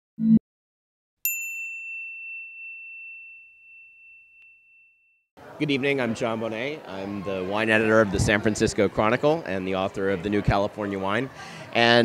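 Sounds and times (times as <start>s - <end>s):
bright bell ding: 1.3s - 5.0s.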